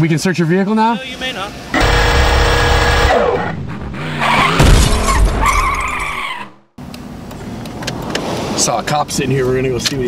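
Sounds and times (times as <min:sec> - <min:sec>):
tire-like screech: 0:01.8 - 0:06.7
crash with glass shattering: 0:03.4 - 0:06.2.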